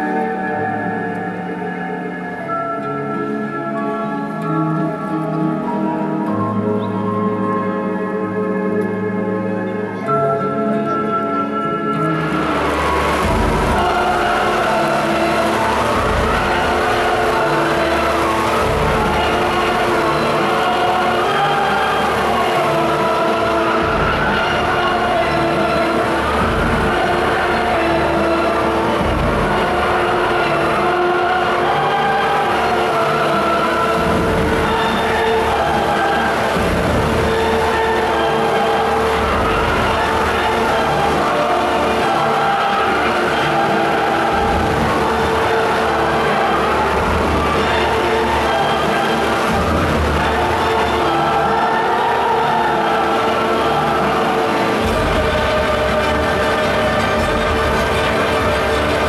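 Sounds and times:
music: 0.0 - 59.0
wind machine roaring: 12.2 - 59.0.

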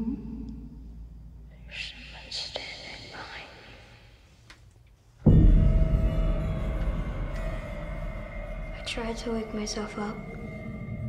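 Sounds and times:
low steady hum: 0.0 - 11.0
person whispering: 1.5 - 4.0.

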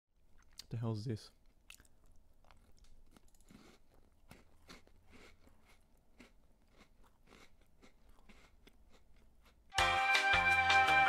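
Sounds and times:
small clicks and crunches: 1.7 - 4.7.

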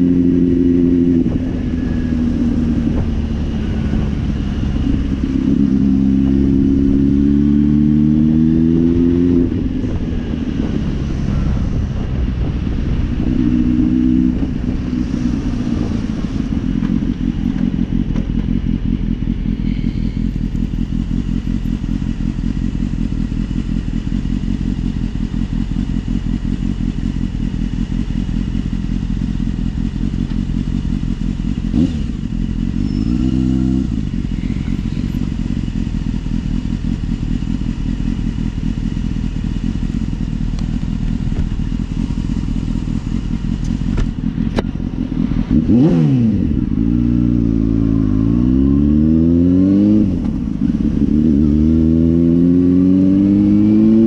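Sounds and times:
motorcycle accelerating through gears: 0.0 - 54.0
motorcycle engine idling: 9.5 - 33.1, 33.7 - 48.2
motorcycle throttle blips: 29.9 - 48.5.

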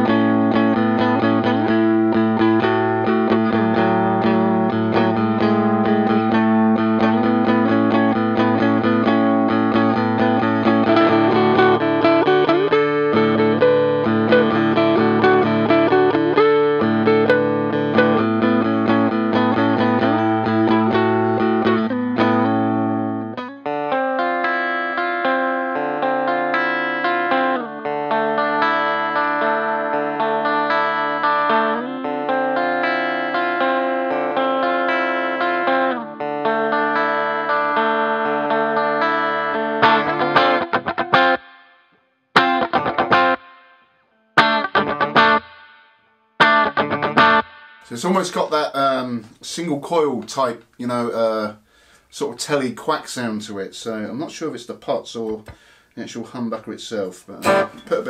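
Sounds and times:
electric guitar chords and notes: 0.0 - 52.6, 55.2 - 58.0.

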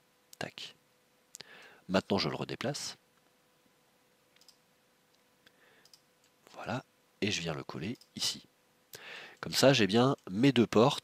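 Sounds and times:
faint computer mouse clicks: 4.4 - 6.4.

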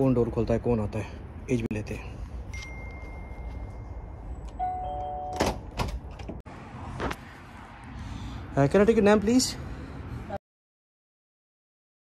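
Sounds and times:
electronic door chime: 2.6 - 4.0, 4.6 - 5.6.

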